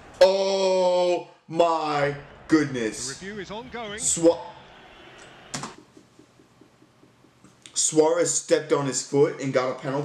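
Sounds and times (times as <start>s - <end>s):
man's voice: 0.2s - 4.6s.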